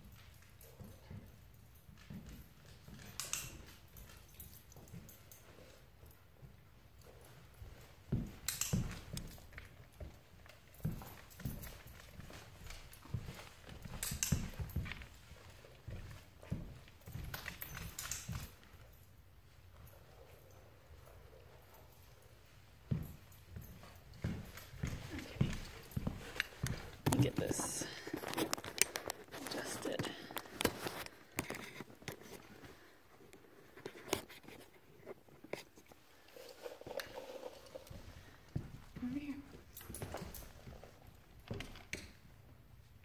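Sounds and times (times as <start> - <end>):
footsteps on hardwood floor: 0.0 - 18.7, 22.4 - 32.8, 38.0 - 42.2
dog claws tapping on floor: 0.0 - 19.0, 22.8 - 35.8.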